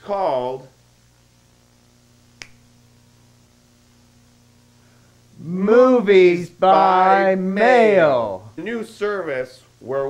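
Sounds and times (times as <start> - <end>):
faint low hum: 0.0 - 10.0
finger snap: 2.4 - 2.7.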